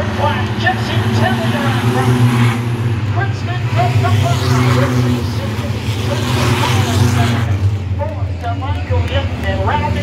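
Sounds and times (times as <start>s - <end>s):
race cars passing: 0.0s - 10.0s.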